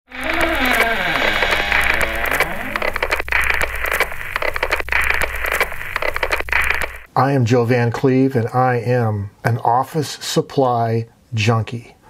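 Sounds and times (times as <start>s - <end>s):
radio static crackling: 0.1s - 7.1s.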